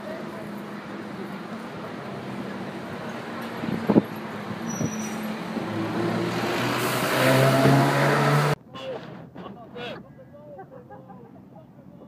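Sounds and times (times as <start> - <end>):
city street traffic: 0.0 - 12.0
car engine accelerating: 5.5 - 8.6.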